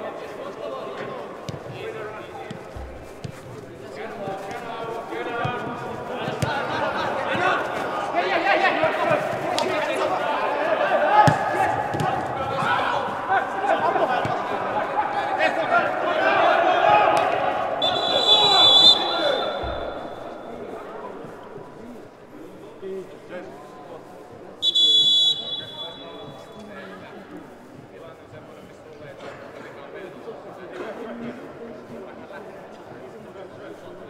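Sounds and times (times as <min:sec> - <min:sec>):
people shouting and calling: 0:06.2 - 0:20.8
referee's whistle: 0:17.8 - 0:20.5, 0:24.6 - 0:26.6.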